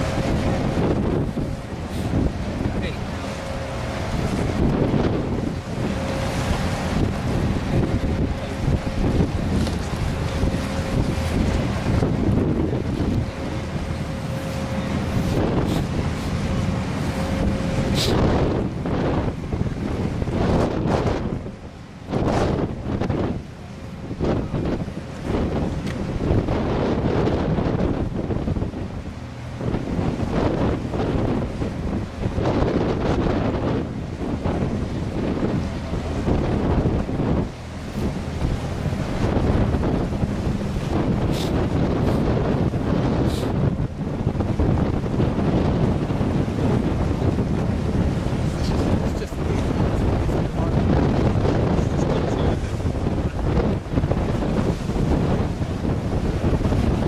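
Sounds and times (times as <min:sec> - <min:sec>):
ship engine low rumble: 0:00.0 - 0:57.0
water washing along quay: 0:00.0 - 0:57.0
wind buffeting microphone: 0:00.0 - 0:57.0.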